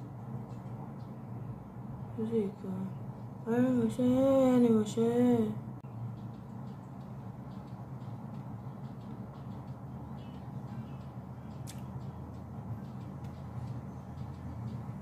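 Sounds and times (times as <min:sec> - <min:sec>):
faint music from earphones: 0:00.0 - 0:15.0
steady low hum: 0:00.0 - 0:15.0.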